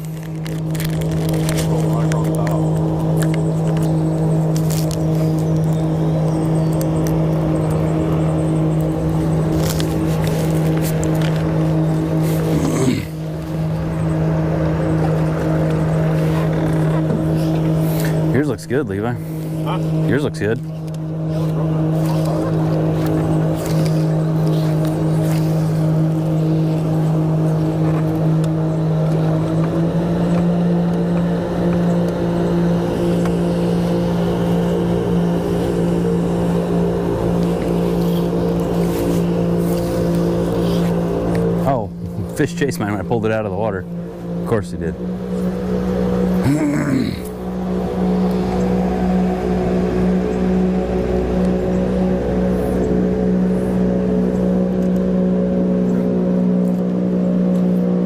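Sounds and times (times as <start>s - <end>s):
electric trolling motor humming: 0.0s - 58.0s.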